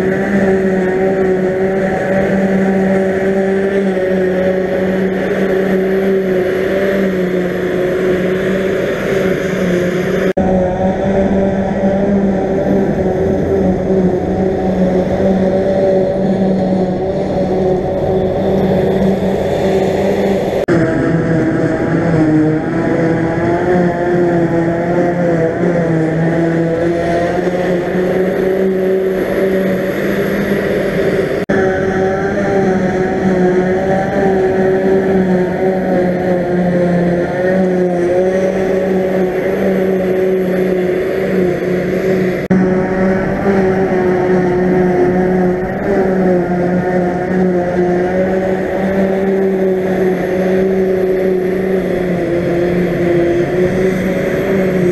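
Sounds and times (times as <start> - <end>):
forage harvester drone: 0.0 - 54.9
tractor running: 0.0 - 54.9.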